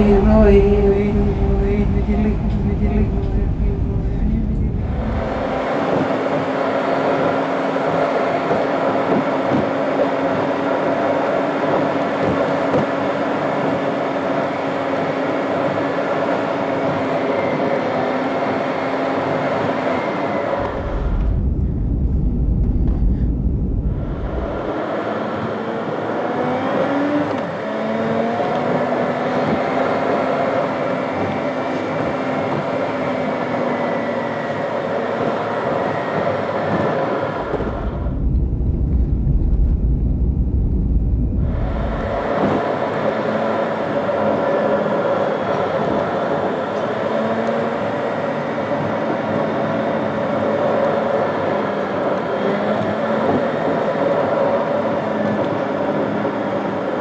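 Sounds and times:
muffled rumble inside car: 0.0s - 12.9s, 20.5s - 27.5s, 28.2s - 49.7s
car engine and tyre noise: 0.0s - 57.0s.

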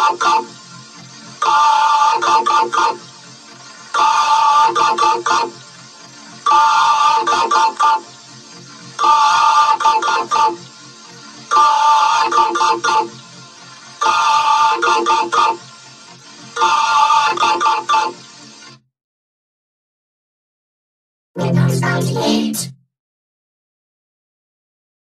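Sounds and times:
ringtone musical phrase: 21.4s - 22.8s.

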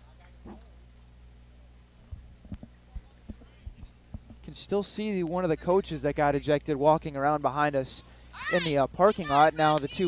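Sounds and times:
ballpark ambience: 0.0s - 10.0s
low electrical hum: 0.0s - 10.0s.

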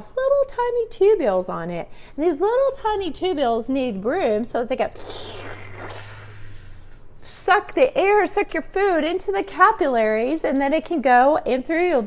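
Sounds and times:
person sucking air in: 4.9s - 7.1s.

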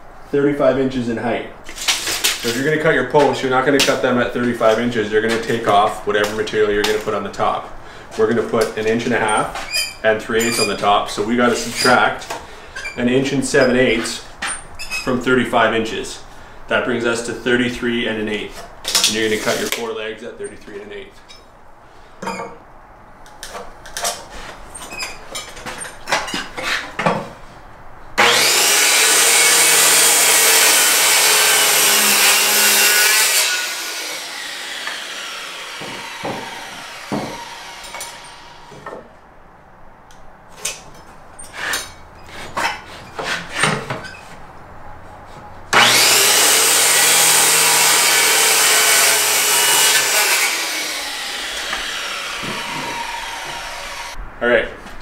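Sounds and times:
circular saw cutting wood: 19.1s - 19.8s, 28.2s - 39.0s, 45.7s - 54.2s.

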